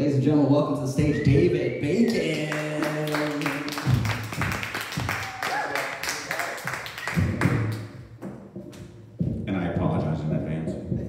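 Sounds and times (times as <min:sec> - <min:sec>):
audience clapping: 0:02.0 - 0:08.0
music: 0:03.1 - 0:11.0.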